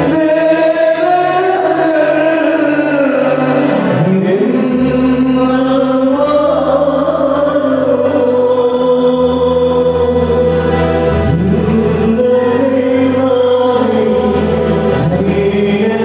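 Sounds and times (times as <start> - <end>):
man singing a chant: 0.0 - 10.6, 11.2 - 16.0.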